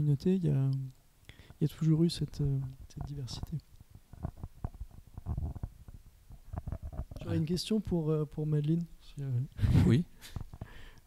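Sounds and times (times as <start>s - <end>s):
microphone handling thumps and clicks: 2.3s - 7.5s, 9.6s - 10.8s.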